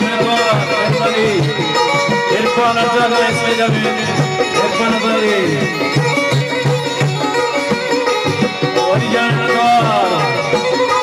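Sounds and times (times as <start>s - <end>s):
steady drum beat: 0.0s - 11.0s
zither gliding melody: 0.0s - 11.0s.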